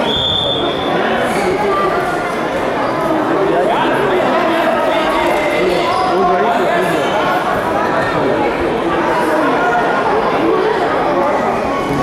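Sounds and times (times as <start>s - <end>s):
babble of many people talking: 0.0s - 12.0s.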